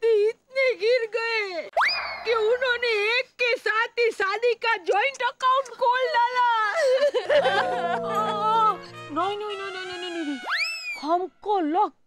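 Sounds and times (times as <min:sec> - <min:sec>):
comic upward glide tone: 0:07.4 - 0:09.1.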